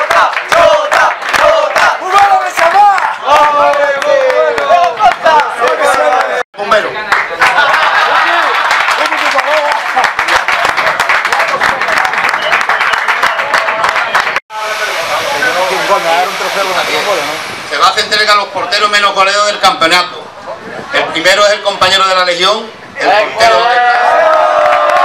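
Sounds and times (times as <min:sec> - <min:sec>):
small group applauding: 0:00.0 - 0:06.4, 0:07.0 - 0:14.4, 0:24.1 - 0:25.0
people talking: 0:02.0 - 0:24.0.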